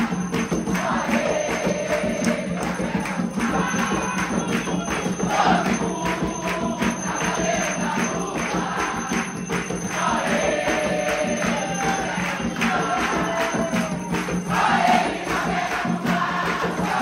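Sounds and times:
congregation singing: 0.0 - 17.0
hand-clapping: 0.0 - 17.0.

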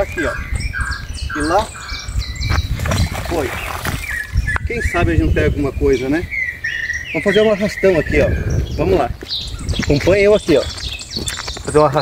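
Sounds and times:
birds chirping: 0.0 - 12.0
magnet splashing into river: 2.8 - 4.2.

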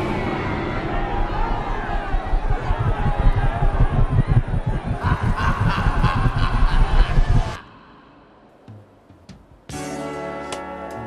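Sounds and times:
noisy party crowd: 0.0 - 7.6
bass-heavy music: 1.0 - 7.6.

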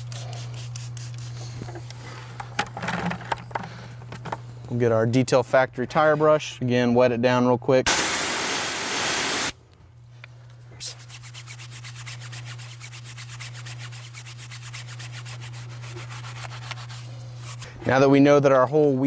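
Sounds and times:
pressure washer spraying water: 7.9 - 9.6
brush scrubbing a tire: 10.9 - 17.6.

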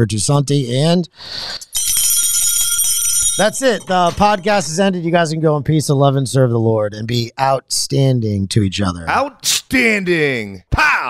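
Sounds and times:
electronic chime ringing: 1.7 - 4.9.

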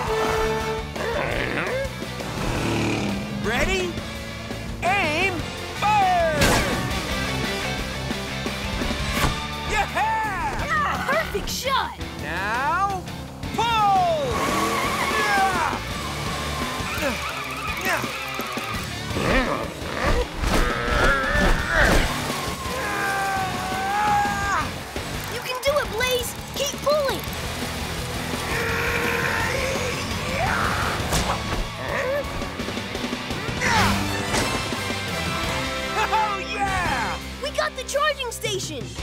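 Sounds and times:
truck driving and skidding effects: 0.0 - 9.7, 10.3 - 36.1
cartoon background music: 0.0 - 27.7, 28.3 - 39.0
cartoon characters shouting: 9.7 - 11.9, 13.6 - 15.8, 22.6 - 27.0, 28.5 - 31.1, 35.9 - 38.0.

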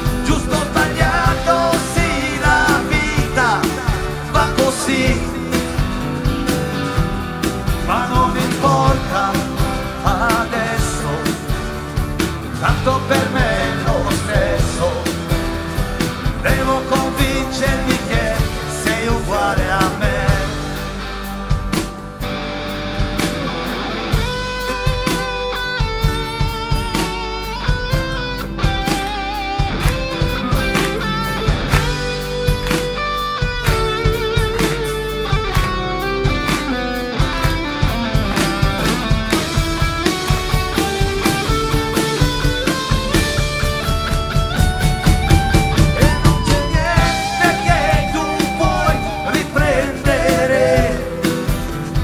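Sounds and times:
bass guitar: 0.0 - 52.0
drum kit beat: 0.0 - 52.0
strummed guitars: 0.0 - 52.0.

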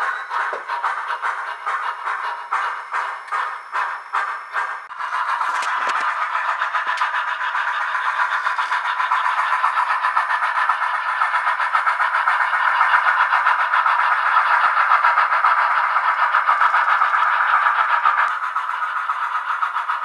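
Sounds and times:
steam locomotive exhaust chuffs: 0.0 - 20.0.

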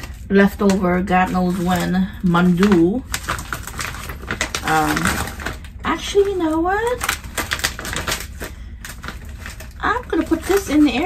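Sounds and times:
plastic bag crinkling and tearing: 0.0 - 11.0.

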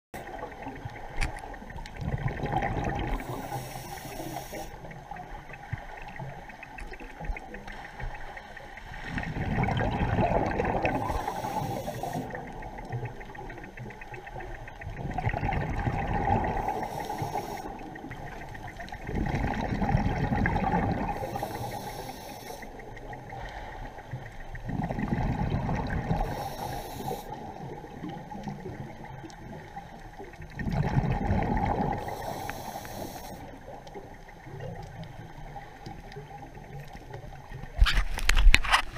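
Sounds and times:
gurgling rush of exhaled bubbles: 0.2 - 3.6, 9.0 - 21.7, 22.7 - 32.4
regulator hiss: 3.2 - 4.8, 11.0 - 12.4, 16.6 - 17.8, 21.2 - 22.7, 26.2 - 27.4, 32.0 - 33.5.

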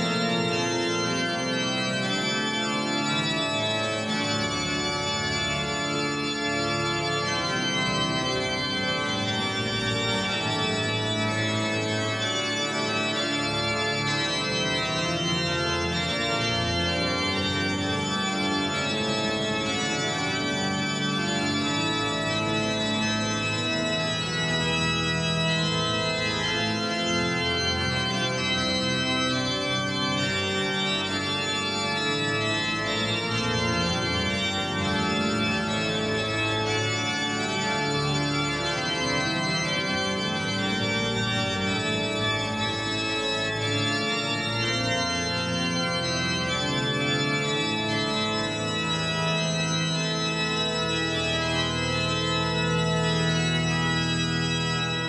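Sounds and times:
pipe organ playing chords: 0.0 - 55.0.

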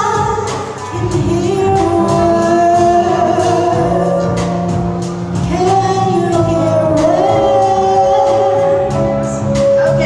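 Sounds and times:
woman singing: 0.0 - 4.8, 5.4 - 10.0
jazz band playing: 0.0 - 10.0.

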